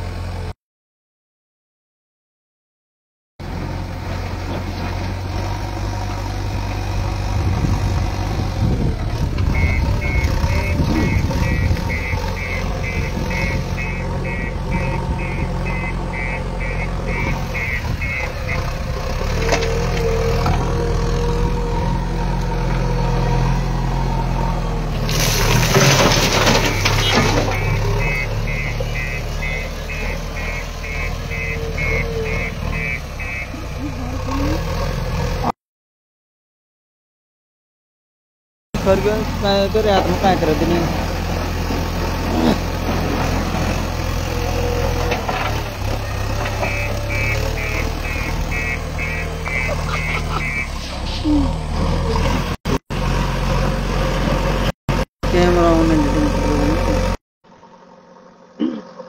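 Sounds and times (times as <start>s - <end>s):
diesel engine running: 0.0s - 0.5s, 3.4s - 35.5s, 38.8s - 59.0s
high reversing beeps: 9.5s - 18.7s, 26.6s - 33.7s, 46.4s - 50.8s.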